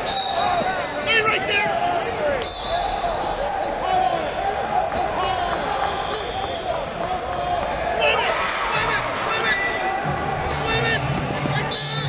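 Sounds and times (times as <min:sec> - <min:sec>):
crowd voices in hall: 0:00.0 - 0:12.0.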